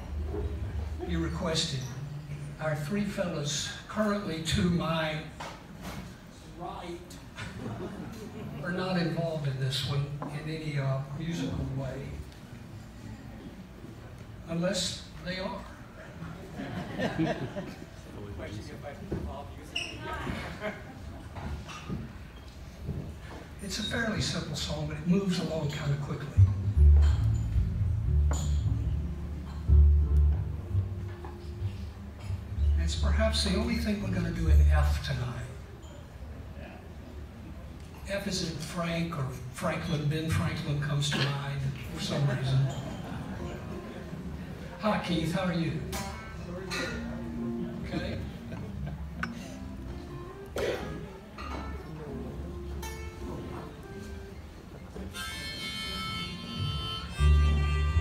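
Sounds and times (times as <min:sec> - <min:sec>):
audience talking indistinctly: 0:00.0 - 0:58.0.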